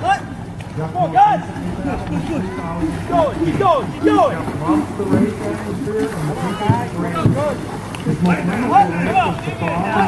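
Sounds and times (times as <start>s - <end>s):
paddles splashing in water: 0.0s - 10.0s
spectators calling and chattering: 0.0s - 10.0s.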